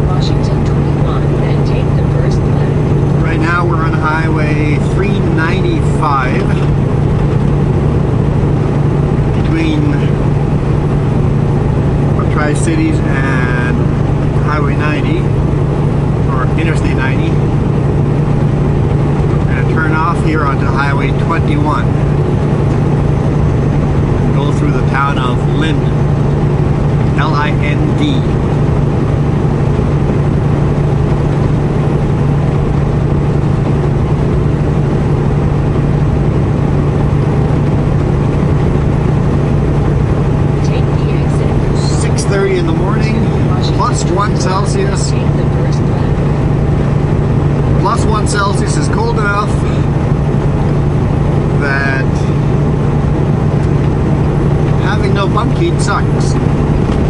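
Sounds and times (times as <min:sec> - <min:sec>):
indistinct voice: 0:00.0 - 0:06.8, 0:09.3 - 0:10.2, 0:12.2 - 0:15.3, 0:16.2 - 0:17.4, 0:19.3 - 0:22.0, 0:24.3 - 0:26.0, 0:27.1 - 0:28.4, 0:40.6 - 0:46.3, 0:47.8 - 0:50.0, 0:51.6 - 0:52.4, 0:54.8 - 0:56.4
truck engine and road noise: 0:00.0 - 0:57.0.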